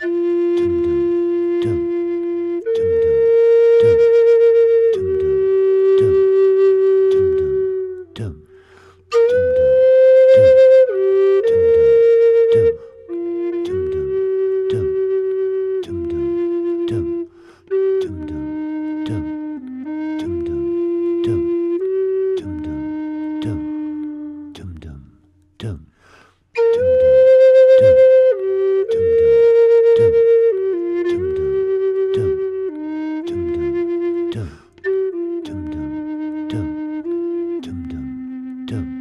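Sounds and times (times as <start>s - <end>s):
flute playing long tones: 0.0s - 25.2s, 26.6s - 39.0s
looped vocal beat: 8.1s - 8.5s, 24.5s - 25.9s, 34.3s - 34.6s, 37.6s - 38.1s.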